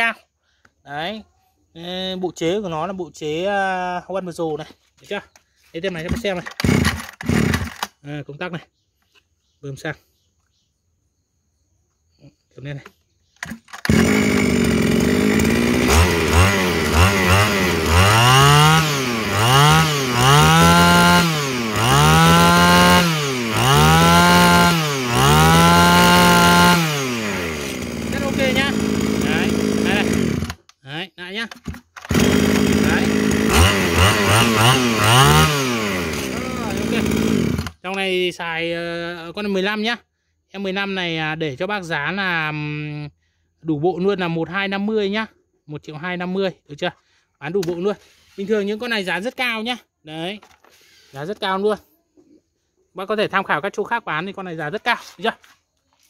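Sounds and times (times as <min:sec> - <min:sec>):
brush cutter engine revving: 0:05.8 - 0:08.1, 0:12.8 - 0:30.8, 0:31.5 - 0:38.0.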